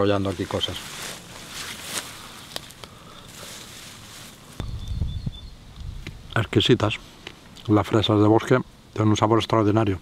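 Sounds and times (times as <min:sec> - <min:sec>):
leafy plants rustling: 0:00.0 - 0:08.2.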